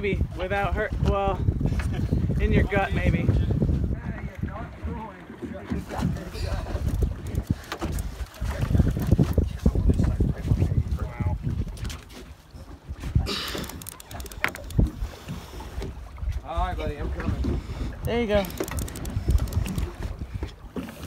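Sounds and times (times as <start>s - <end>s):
water washing against boat hull: 0.0s - 21.0s
wind buffeting microphone: 0.0s - 21.0s
knocks and clicks from gear: 13.5s - 14.9s, 18.4s - 20.0s.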